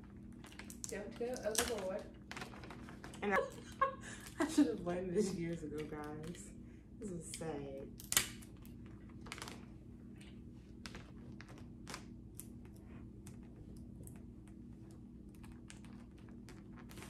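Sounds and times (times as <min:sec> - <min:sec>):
wrapping paper crinkling: 0:00.0 - 0:04.5, 0:08.5 - 0:13.6, 0:14.4 - 0:17.0
faint low hum: 0:00.0 - 0:17.0.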